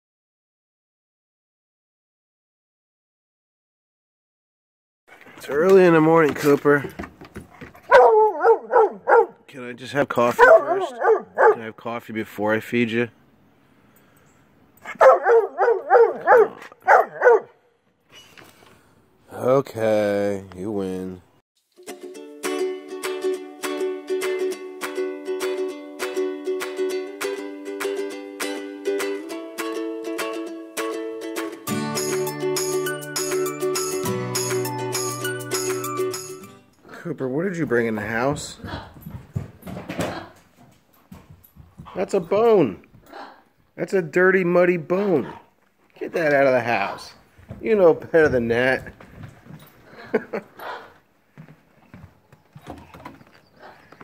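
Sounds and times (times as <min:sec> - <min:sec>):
dog knocking and scraping wood: 0:05.4 - 0:09.3, 0:52.6 - 0:53.4
dog baying: 0:07.5 - 0:09.4, 0:10.3 - 0:11.6, 0:14.8 - 0:17.6.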